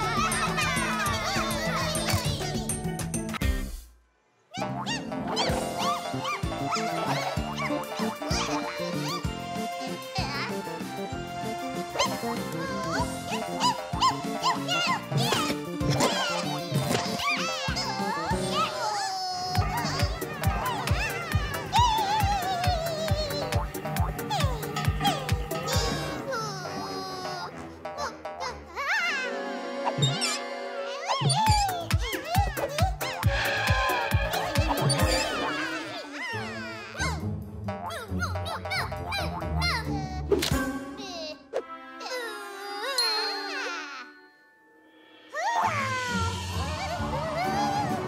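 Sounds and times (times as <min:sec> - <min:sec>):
bouncy cartoon music: 0:00.0 - 0:03.8, 0:04.5 - 0:44.7, 0:45.3 - 0:48.0.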